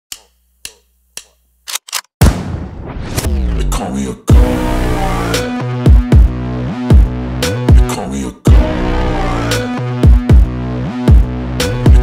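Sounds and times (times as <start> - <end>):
sharp clicks: 0.1 - 2.1.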